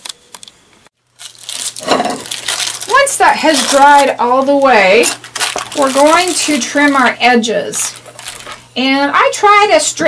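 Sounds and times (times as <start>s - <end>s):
tissue paper crinkling: 1.2s - 8.7s.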